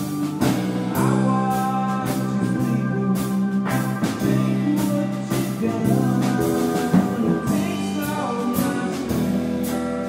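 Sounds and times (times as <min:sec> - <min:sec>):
drum kit beat: 0:00.0 - 0:10.0
electric and acoustic guitars: 0:00.0 - 0:10.0
live country band playing: 0:00.0 - 0:10.0.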